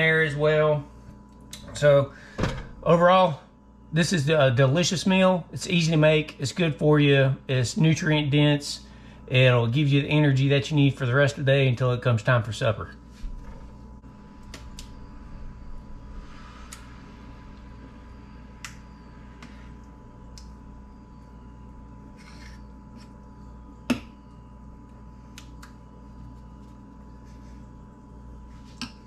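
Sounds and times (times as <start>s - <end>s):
steady background hum: 0.0s - 29.0s.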